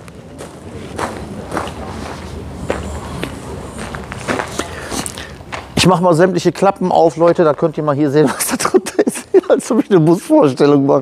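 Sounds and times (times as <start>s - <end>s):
footsteps on gravel: 0.0s - 5.8s.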